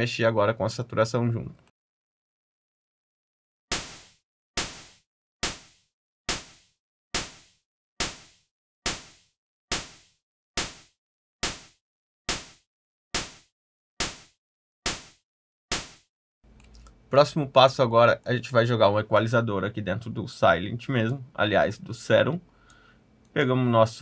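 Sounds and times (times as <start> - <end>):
distorted synth snare hits: 3.7 - 12.6, 13.2 - 16.1.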